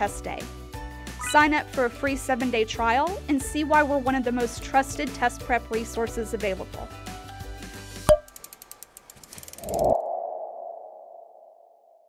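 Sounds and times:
quick ticks: 8.2s - 9.9s.

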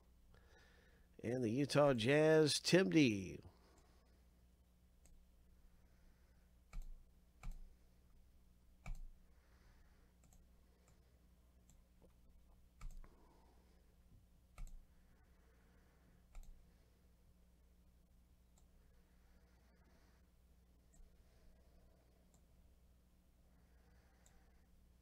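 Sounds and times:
computer mouse clicking: 6.7s - 7.7s, 8.8s - 9.2s, 10.2s - 11.0s, 12.8s - 13.1s, 14.6s - 14.8s, 16.3s - 16.6s.

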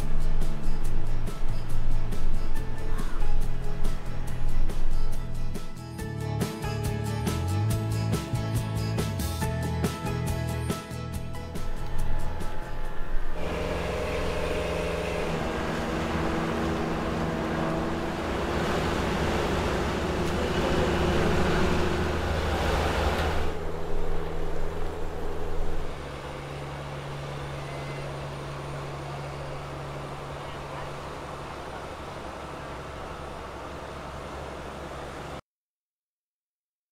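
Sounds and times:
boat engine humming: 0.0s - 35.4s.

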